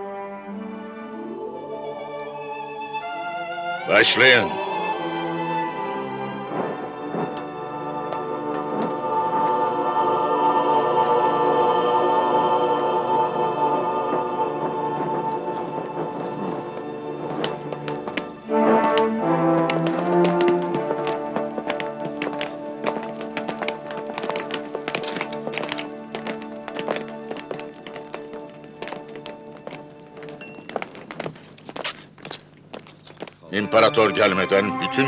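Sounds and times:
choral and orchestral film score: 0.0 - 30.4, 33.5 - 35.0.

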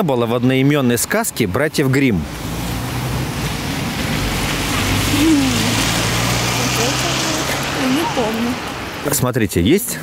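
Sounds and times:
road traffic hiss: 0.1 - 10.0.

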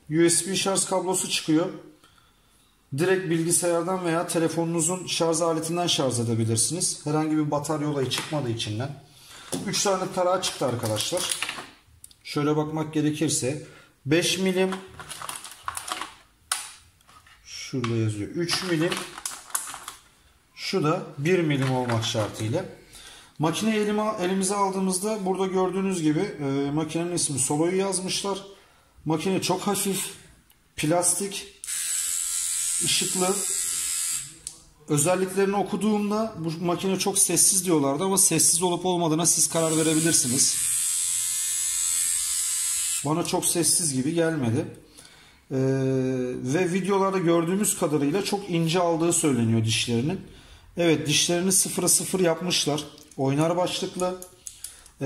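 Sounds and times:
electric shaver buzzing: 31.6 - 34.4, 39.6 - 43.1.

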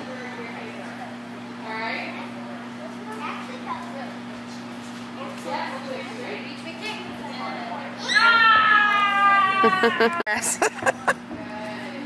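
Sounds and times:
person cheering shout: 8.3 - 10.2.

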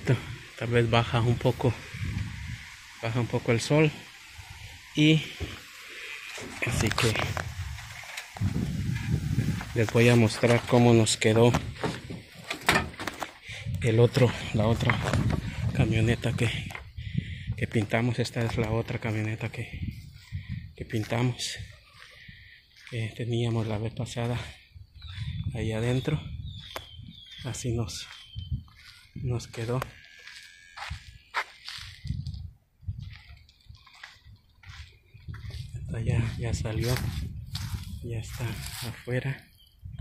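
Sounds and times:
footsteps: 5.2 - 13.4, 26.6 - 32.4, 33.0 - 39.1.

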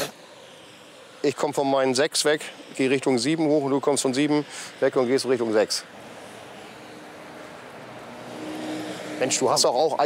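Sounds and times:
motor vehicle going by: 4.2 - 10.0.

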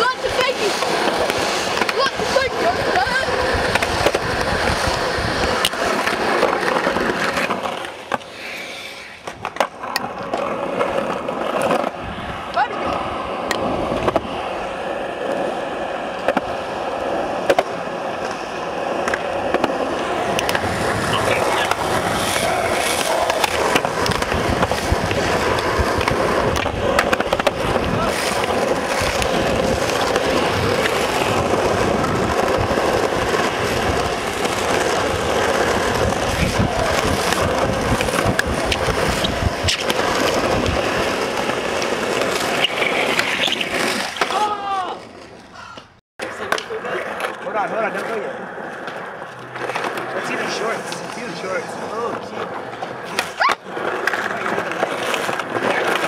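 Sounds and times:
skateboard clacks: 0.0 - 45.4, 46.2 - 56.0
skateboard wheels rolling on asphalt: 0.0 - 56.0.

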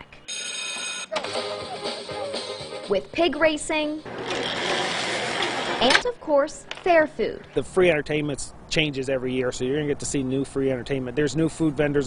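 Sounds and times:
electric bell ringing: 0.3 - 2.5.

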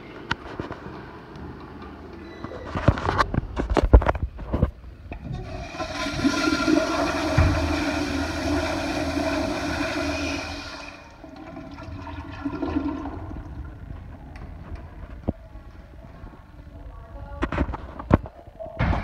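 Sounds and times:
quiet flow of water: 5.1 - 16.0
toilet flushing: 5.2 - 14.2
thump: 7.3 - 8.0.

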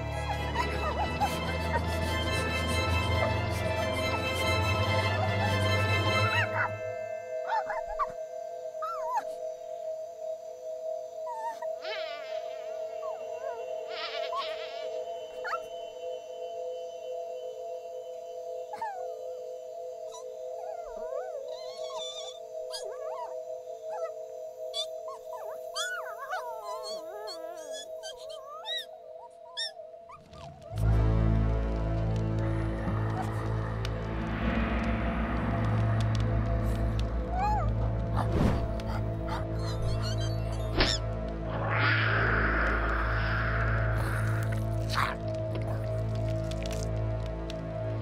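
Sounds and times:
two-note music drone: 0.0 - 9.6, 30.8 - 38.2.

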